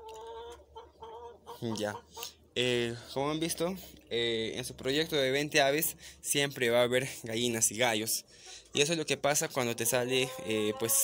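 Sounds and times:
chickens clucking: 0.0 - 4.0, 7.8 - 11.0.

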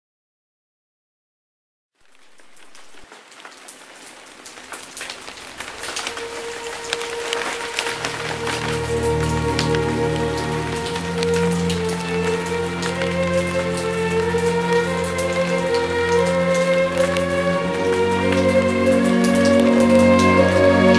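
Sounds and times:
rain falling: 2.0 - 20.9
drops ticking: 3.7 - 20.9
soft music with held notes: 5.8 - 20.9.

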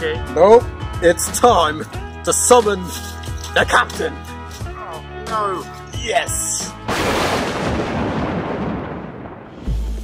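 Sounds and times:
explosive boom rumbling: 6.9 - 10.0.

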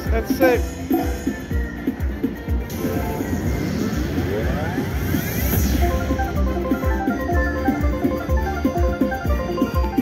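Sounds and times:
slot machine game music: 0.0 - 10.0.

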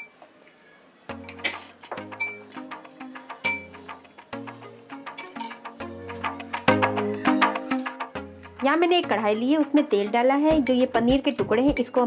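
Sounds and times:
background music with steady beat: 1.1 - 12.0
spoon clinking on glass bowl: 3.4 - 3.7, 5.2 - 5.7.

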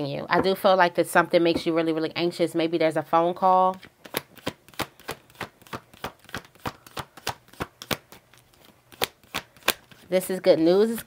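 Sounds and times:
cards being shuffled: 3.7 - 10.1.

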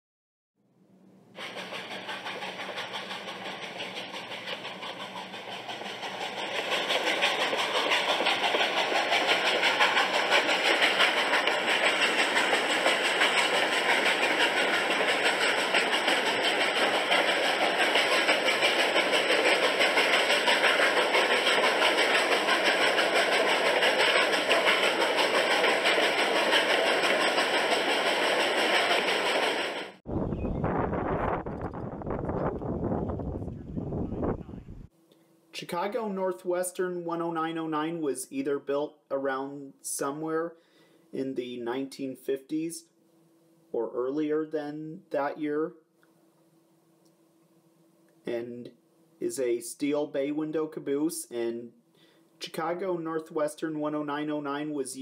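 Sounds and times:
train rumble and clatter: 1.4 - 30.0
low rumbling noise: 30.1 - 34.9.

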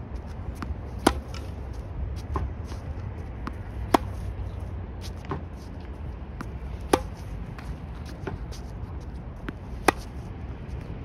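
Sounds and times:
tennis racket striking ball: 0.6 - 1.6, 3.4 - 4.3, 6.4 - 8.5, 9.4 - 10.2.

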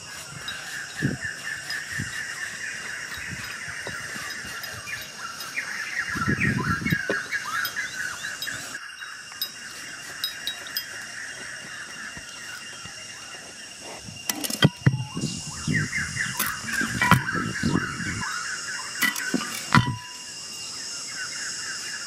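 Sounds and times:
rapid high chirping: 0.0 - 13.0
hands rustling in sandy soil: 0.0 - 14.3
insects droning: 0.0 - 22.0.

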